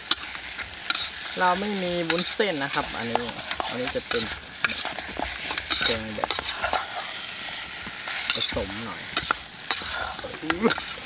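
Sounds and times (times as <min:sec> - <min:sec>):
steady sizzling hiss: 0:00.0 - 0:11.0.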